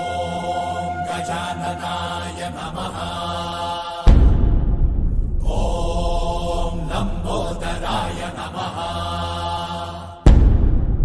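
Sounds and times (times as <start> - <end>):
chanted devotional vocal: 0.0 - 10.4.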